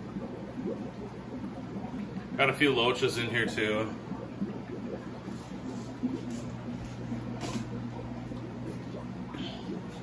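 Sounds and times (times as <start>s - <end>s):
aquarium pumps humming: 0.0s - 10.0s
water bubbling: 0.0s - 10.0s.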